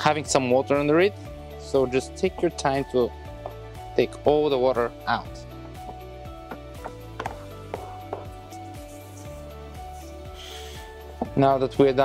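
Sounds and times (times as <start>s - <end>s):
soft plucked background music: 0.0s - 12.0s.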